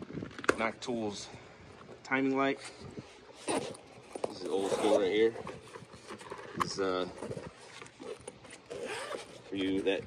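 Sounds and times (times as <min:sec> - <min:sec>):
zipper being pulled open: 0:03.3 - 0:09.8.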